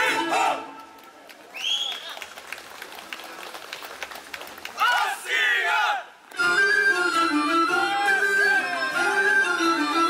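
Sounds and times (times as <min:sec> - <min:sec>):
folk music with held tones: 0:06.3 - 0:10.0.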